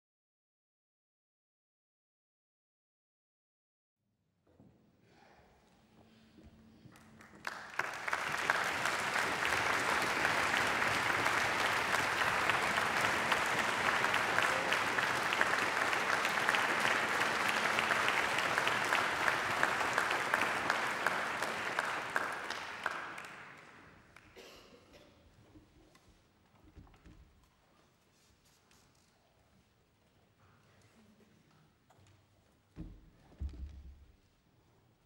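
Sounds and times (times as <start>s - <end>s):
audience applauding: 6.9s - 24.4s.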